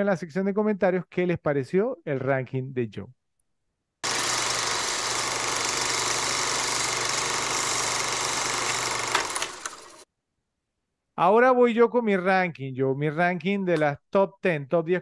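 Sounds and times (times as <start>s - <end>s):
film projector whirring: 4.0s - 10.1s.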